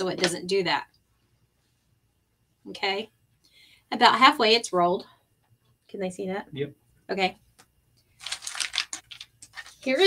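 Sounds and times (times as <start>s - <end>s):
cardboard rustling: 8.2s - 10.0s.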